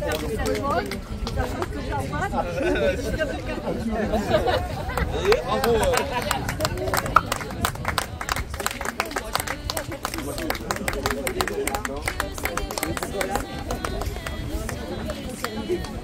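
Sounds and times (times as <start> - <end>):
small group applauding: 0.0 - 1.8, 4.9 - 16.0
voices talking: 0.0 - 16.0
wind rumble on microphone: 0.0 - 16.0.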